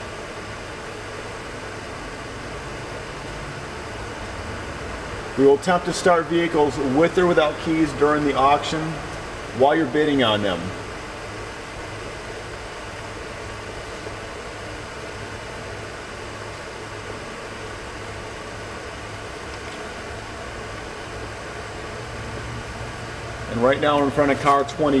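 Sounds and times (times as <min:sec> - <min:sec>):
constant hiss: 0:00.0 - 0:25.0.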